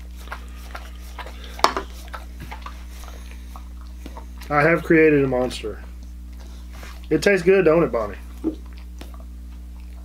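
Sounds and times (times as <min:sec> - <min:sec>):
dog licking wet clicks: 0:00.0 - 0:07.4.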